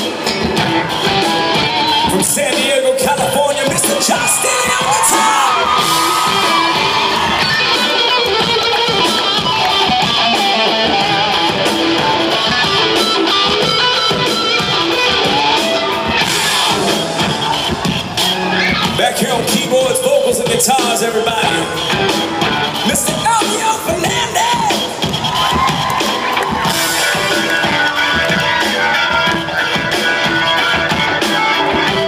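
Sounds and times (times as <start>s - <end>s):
crowd cheering and yelling: 0.0s - 32.0s
rock band playing live: 0.0s - 32.0s.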